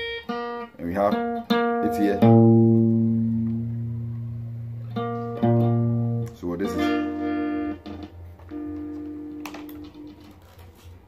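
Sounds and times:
electric guitar note ringing: 0:00.0 - 0:10.6
low steady hum: 0:02.2 - 0:11.0.

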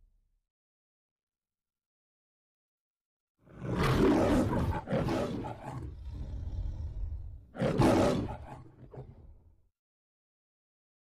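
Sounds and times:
lion roaring: 0:03.5 - 0:09.4.

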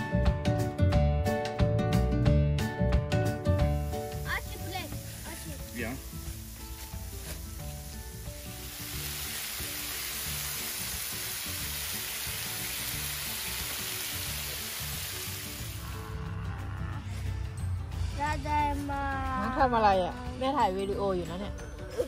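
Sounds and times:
soft background music: 0:00.0 - 0:22.0
food sizzling on griddle: 0:03.5 - 0:16.0.

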